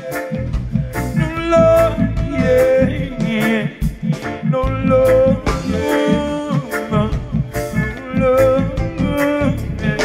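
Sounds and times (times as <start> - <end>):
reggae band playing: 0.0 - 10.0.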